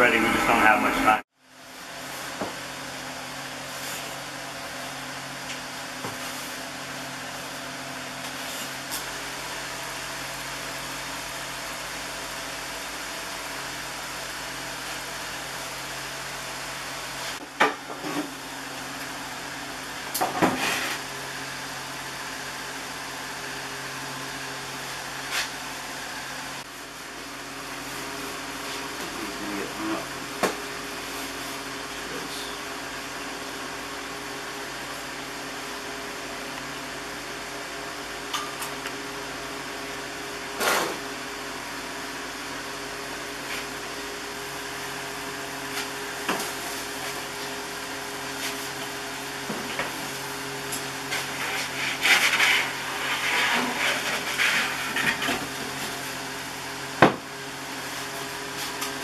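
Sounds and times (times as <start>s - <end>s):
machine hum: 0.0s - 10.4s.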